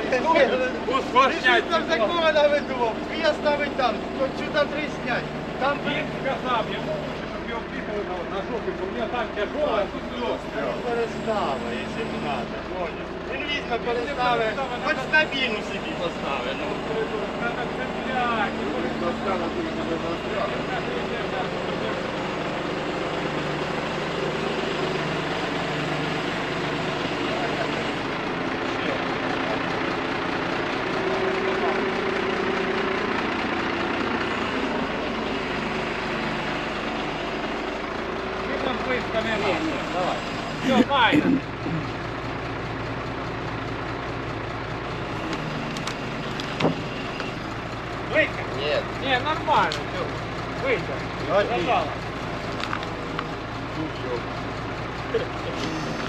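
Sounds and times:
truck engine running: 0:00.0 - 0:56.0.

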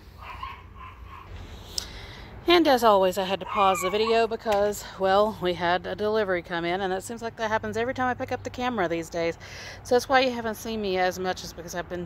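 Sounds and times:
dog making high sounds: 0:00.2 - 0:01.4, 0:03.4 - 0:04.4.

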